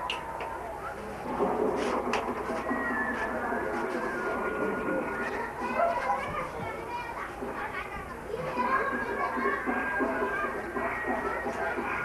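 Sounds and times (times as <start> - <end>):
many voices talking and calling: 0.0 - 12.0.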